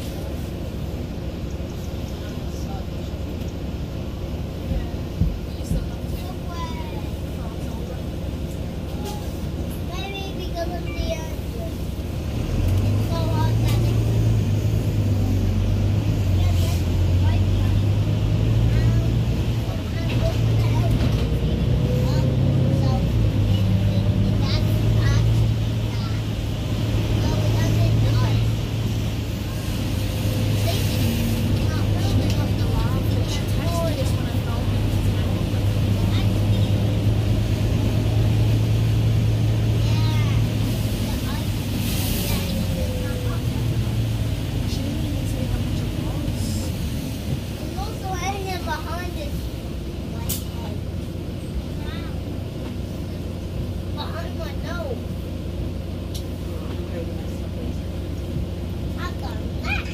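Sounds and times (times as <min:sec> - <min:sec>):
bus diesel engine drone: 0:00.0 - 0:59.9.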